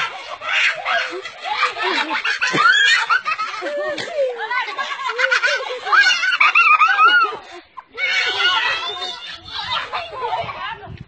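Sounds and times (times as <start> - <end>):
people laughing hard: 0.0 - 10.6
people speaking: 0.0 - 11.0.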